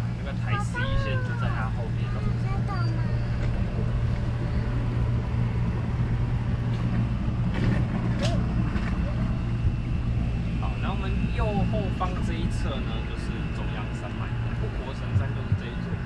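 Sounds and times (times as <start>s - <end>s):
boat motor humming: 0.0s - 16.0s.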